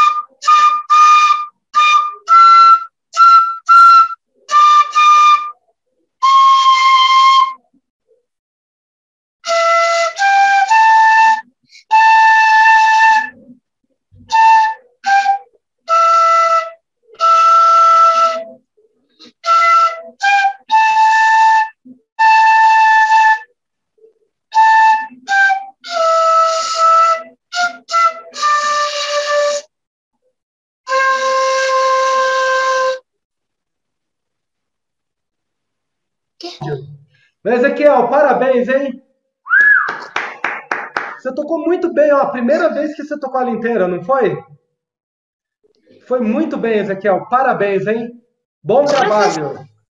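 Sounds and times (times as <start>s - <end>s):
breathy flute notes: 9.4s - 29.7s, 48.7s - 49.6s
person whistling: 39.4s - 40.1s
hand claps of applause: 39.6s - 41.3s.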